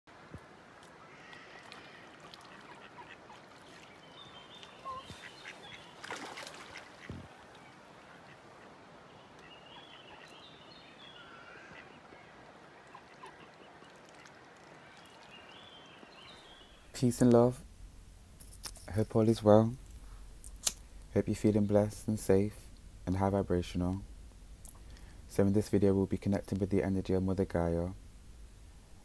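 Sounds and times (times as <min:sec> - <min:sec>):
ducks calling: 0:00.8 - 0:16.9.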